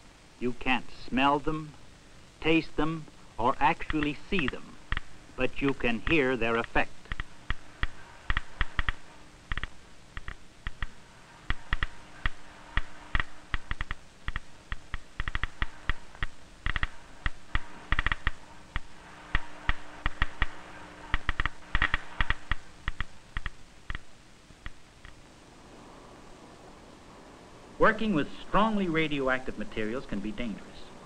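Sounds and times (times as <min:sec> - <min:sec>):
geiger counter clicking: 0:03.5 - 0:25.2.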